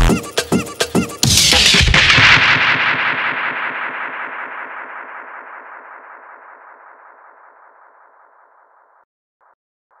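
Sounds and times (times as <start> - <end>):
fluttering electronic tone: 5.3 - 9.6.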